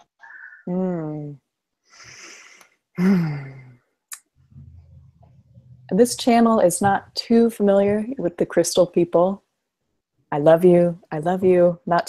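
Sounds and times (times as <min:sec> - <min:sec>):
woman sighing: 0:02.0 - 0:03.8.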